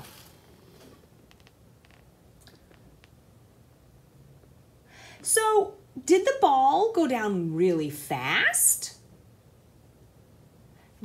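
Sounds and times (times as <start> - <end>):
ball rolling down cardboard ramp: 0.0 - 2.1.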